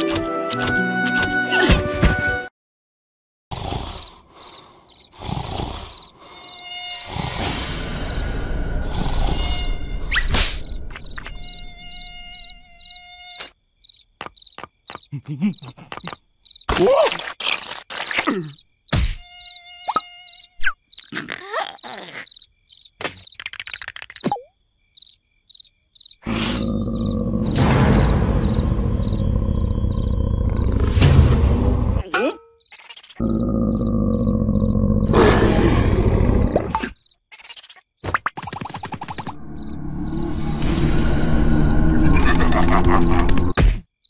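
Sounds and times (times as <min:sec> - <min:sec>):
cartoon mosquito buzzing: 0:05.0 - 0:07.7, 0:08.8 - 0:14.0, 0:17.4 - 0:23.5, 0:32.6 - 0:35.1.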